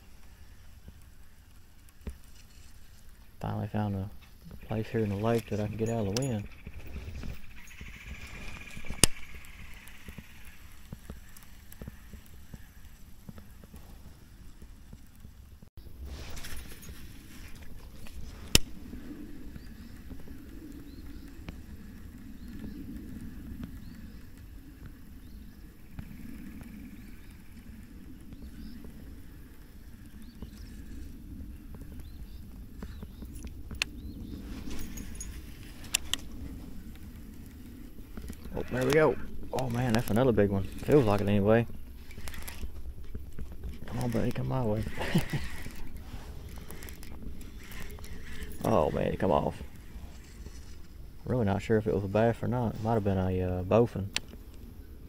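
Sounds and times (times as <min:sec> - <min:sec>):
wind rumble on microphone: 0:00.0 - 0:55.0
fishing reel whirring: 0:04.5 - 0:13.7, 0:33.8 - 0:51.0.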